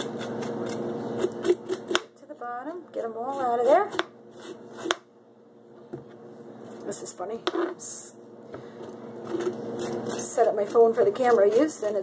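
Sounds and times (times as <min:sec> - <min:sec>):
metal spoon scraping cucumber: 0:00.0 - 0:05.0, 0:09.2 - 0:12.0.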